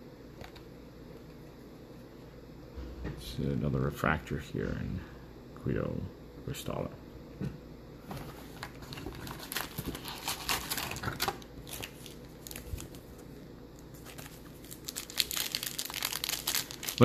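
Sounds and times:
foil wrapper crinkling: 0:08.6 - 0:17.0
foil wrapper tearing: 0:08.8 - 0:13.1, 0:13.8 - 0:17.0.

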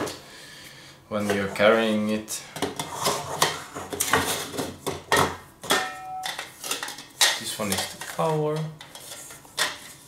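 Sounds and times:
metal cookware knocking and scraping: 0:03.4 - 0:06.8.

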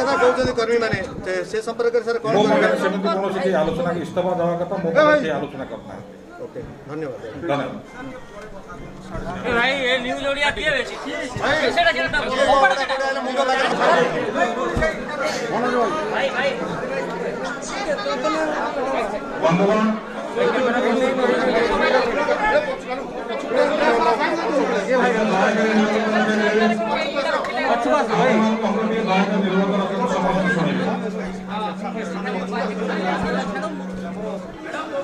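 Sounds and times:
men talking over one another: 0:00.0 - 0:35.0.

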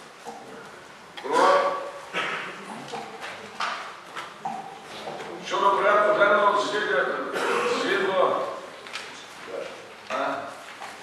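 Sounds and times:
man speaking in a large hall: 0:00.0 - 0:02.7, 0:05.2 - 0:10.8.

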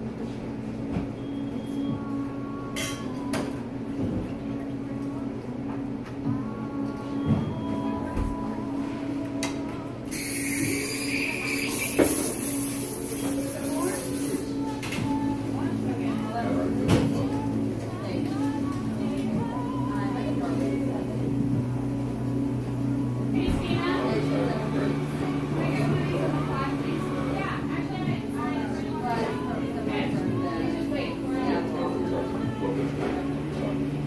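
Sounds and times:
steady low hum: 0:00.0 - 0:34.0
background music: 0:01.6 - 0:34.0
indistinct chatter: 0:06.5 - 0:34.0.

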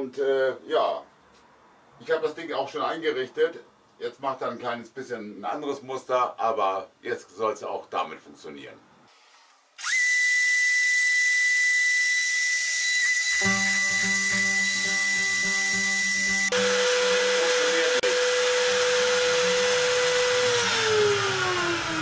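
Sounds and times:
router spindle whine: 0:09.8 - 0:22.0
stepper motor hum: 0:09.8 - 0:22.0
tone sliding down in pitch: 0:13.1 - 0:17.1.

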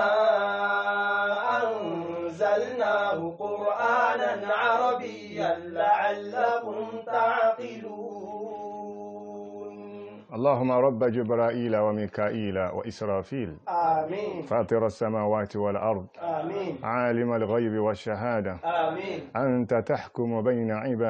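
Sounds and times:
man chanting recitation: 0:00.0 - 0:21.0.

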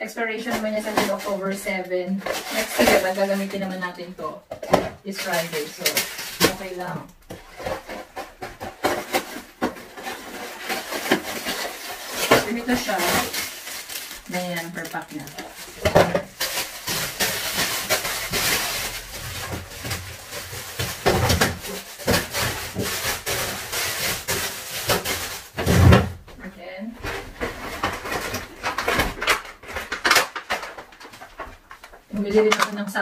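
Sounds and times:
plastic packaging rustling: 0:00.2 - 0:26.4, 0:27.0 - 0:33.0.

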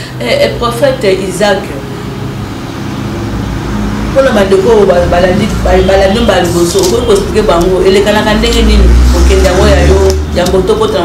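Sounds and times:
low mechanical rumble with hum: 0:00.0 - 0:11.0.

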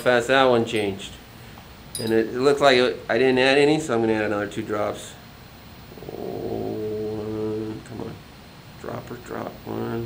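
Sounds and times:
man humming a low note: 0:05.9 - 0:08.2.

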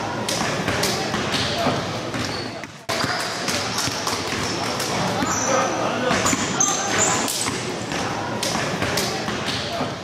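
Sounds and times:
basketballs bouncing on court: 0:00.3 - 0:10.0
sneaker squeaks: 0:00.4 - 0:10.0.

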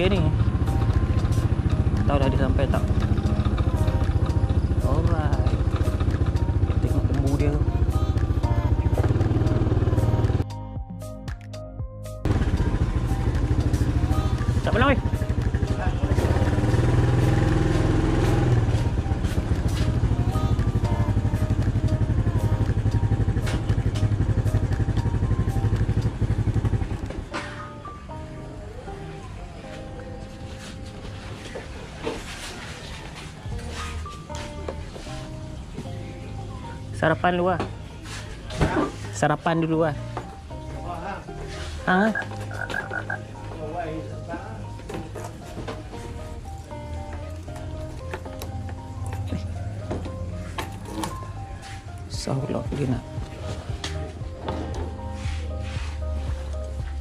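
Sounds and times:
motor scooter engine running: 0:00.0 - 0:10.4, 0:12.3 - 0:27.4
background music: 0:00.0 - 0:57.0.

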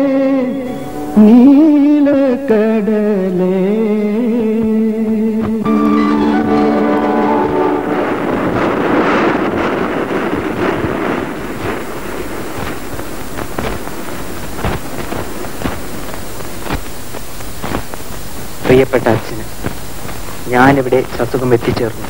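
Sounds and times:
surf hiss with clicks: 0:00.0 - 0:05.6, 0:08.5 - 0:22.0.

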